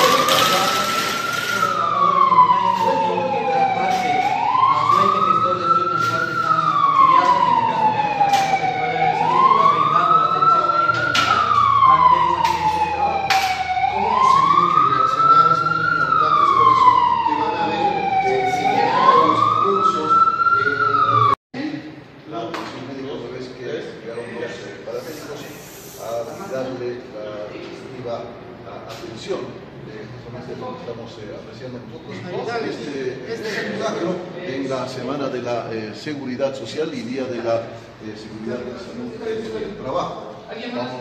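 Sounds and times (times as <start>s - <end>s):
ambulance siren wailing: 0.0s - 21.4s.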